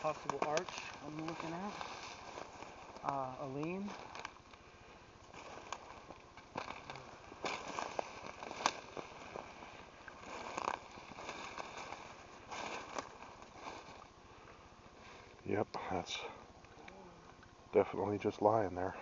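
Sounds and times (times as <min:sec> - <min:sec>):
leaves and twigs crackling underfoot: 0:00.0 - 0:19.0.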